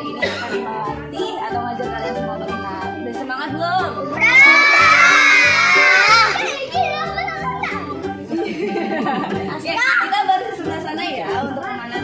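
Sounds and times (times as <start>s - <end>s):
background music with steady beat: 0.0s - 12.0s
children shouting together: 4.1s - 7.9s.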